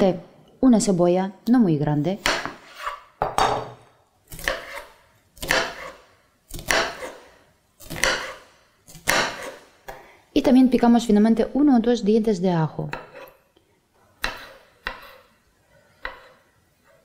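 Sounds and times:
knife chopping onion on board: 2.2s - 3.4s, 4.3s - 9.7s, 14.2s - 15.2s, 16.0s - 16.4s.

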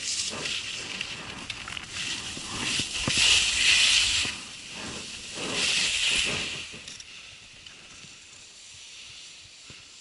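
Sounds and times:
skis scraping on snow: 0.0s - 10.0s.

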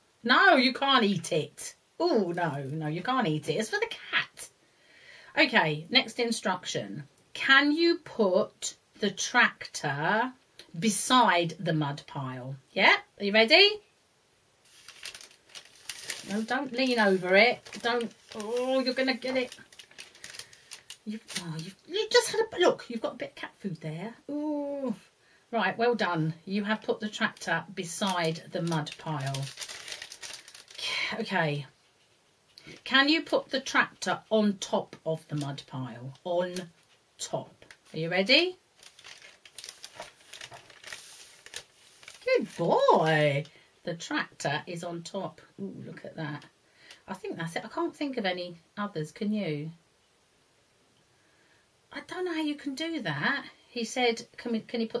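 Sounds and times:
faint rustling: 14.6s - 21.9s, 26.8s - 31.0s, 36.2s - 43.6s.

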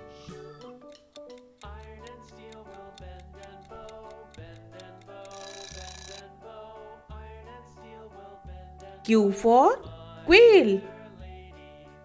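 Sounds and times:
bright ringing alarm: 5.3s - 6.2s.

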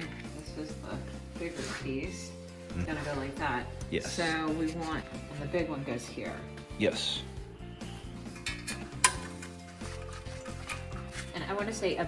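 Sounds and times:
background music: 0.0s - 12.0s
metal clamp clinking: 8.3s - 11.3s.

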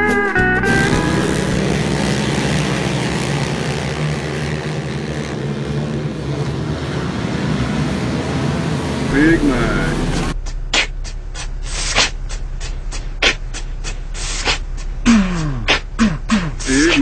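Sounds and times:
slide guitar music: 0.0s - 3.0s
racing quad engines droning: 0.0s - 17.0s.

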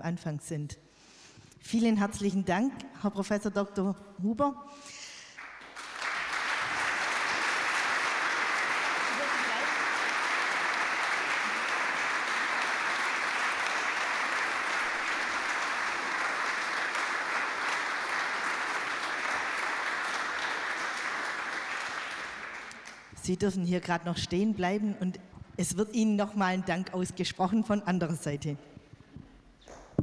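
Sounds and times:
audience applauding: 5.3s - 23.1s.

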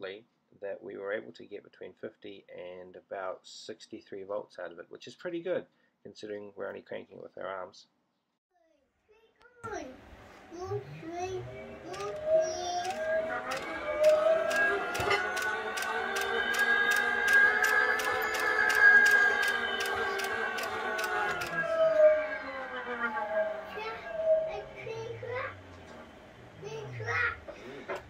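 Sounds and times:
motor whine: 10.7s - 27.6s
regular ticking: 13.6s - 21.5s.

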